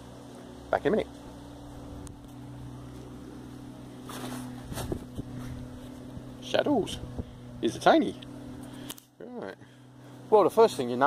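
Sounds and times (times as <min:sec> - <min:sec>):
low engine-like hum: 0:00.0 - 0:11.0
brief rustle: 0:04.0 - 0:05.6.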